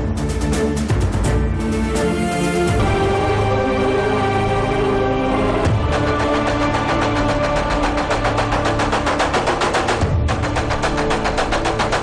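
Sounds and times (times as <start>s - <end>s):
dramatic background score: 0.0s - 12.0s
rapid percussion hits: 5.6s - 12.0s.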